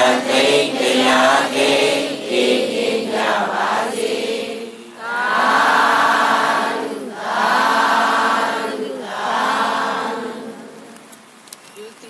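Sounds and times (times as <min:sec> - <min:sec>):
voices chanting in unison: 0:00.0 - 0:11.0.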